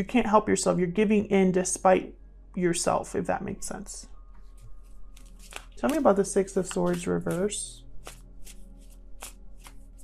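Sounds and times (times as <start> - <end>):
cards being shuffled: 4.4 - 10.0.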